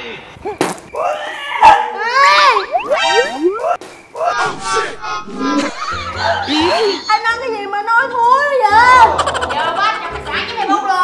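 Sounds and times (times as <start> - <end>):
rising whistle-like swoops: 2.4 - 5.9.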